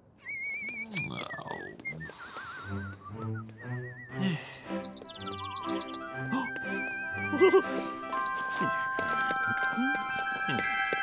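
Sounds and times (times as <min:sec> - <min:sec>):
warbling whistle-like tune: 0:05.5 - 0:08.0.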